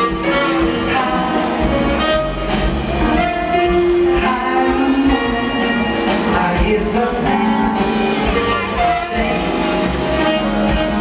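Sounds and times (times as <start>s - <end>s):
person singing: 0.0s - 2.2s, 3.4s - 11.0s
live band playing: 0.0s - 11.0s.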